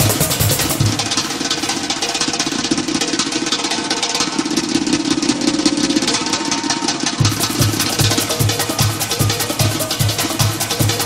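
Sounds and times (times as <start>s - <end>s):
hand drums rolling: 0.0s - 11.0s.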